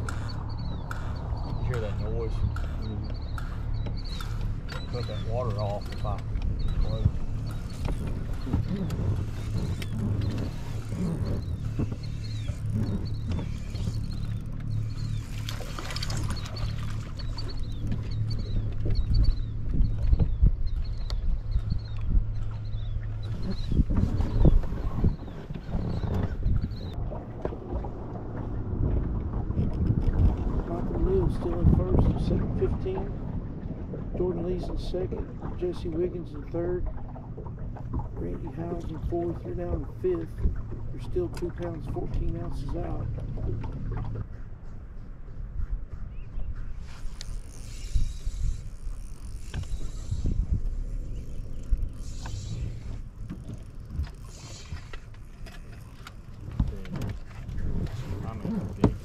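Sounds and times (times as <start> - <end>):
steady low hum: 0.0 - 59.0
wind rumbling on microphone: 0.0 - 59.0.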